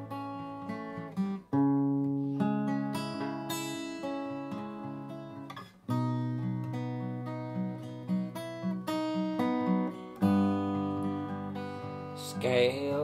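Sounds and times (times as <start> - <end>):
acoustic guitar playing: 0.0 - 13.0.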